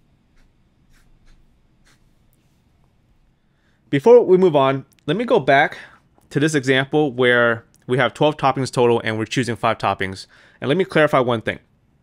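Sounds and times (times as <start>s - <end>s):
pen nib scratching on paper: 0.2s - 2.2s.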